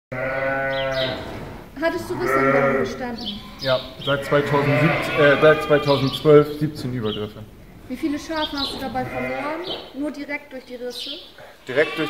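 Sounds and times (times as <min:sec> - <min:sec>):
sheep bleating: 0:00.1 - 0:01.3, 0:02.0 - 0:06.2, 0:09.0 - 0:09.6, 0:11.4 - 0:12.0.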